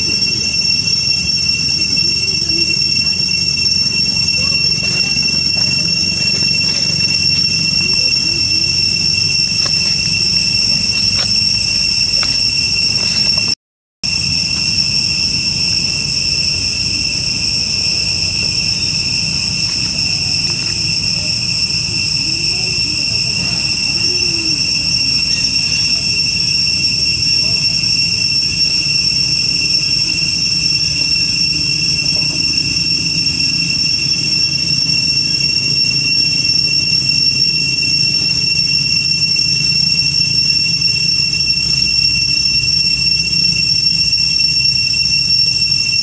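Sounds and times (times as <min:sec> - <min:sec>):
shrill insect chorus: 0:00.0 - 0:46.0.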